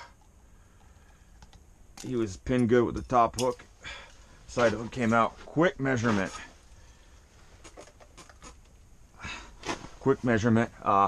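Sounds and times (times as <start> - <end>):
man breathing quietly: 0.0 - 1.7, 3.7 - 4.5, 6.5 - 7.6, 9.1 - 9.7.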